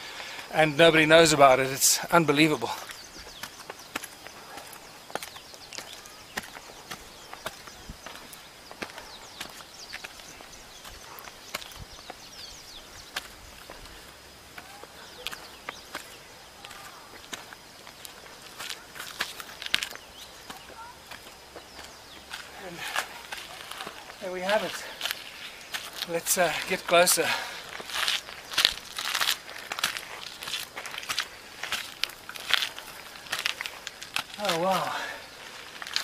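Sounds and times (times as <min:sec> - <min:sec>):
footsteps on rock: 0:02.4 - 0:36.0.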